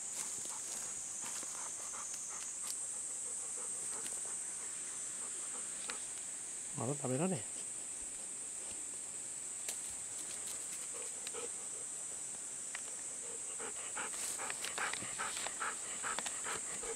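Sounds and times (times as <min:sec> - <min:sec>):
high insect drone: 0:00.0 - 0:16.9
dog panting: 0:00.2 - 0:06.0, 0:10.9 - 0:11.9, 0:13.2 - 0:16.9.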